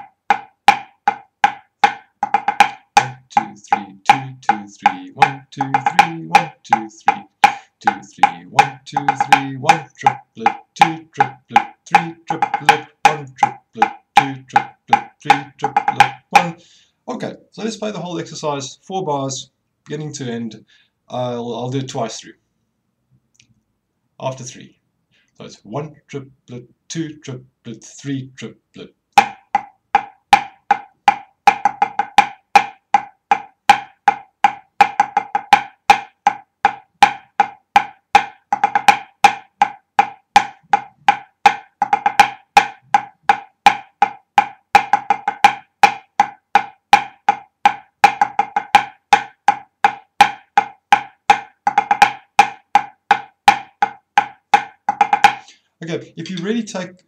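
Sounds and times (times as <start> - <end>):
snare drum strokes: 1.8 - 16.6.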